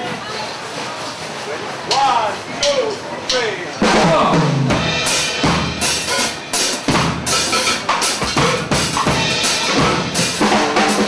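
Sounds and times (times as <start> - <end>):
drum kit playing: 1.9 - 11.0.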